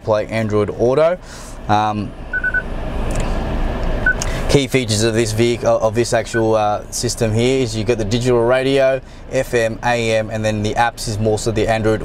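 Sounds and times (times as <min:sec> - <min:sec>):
low cabin rumble: 0:00.0 - 0:12.0
short electronic beeps: 0:02.3 - 0:02.7, 0:04.0 - 0:04.3.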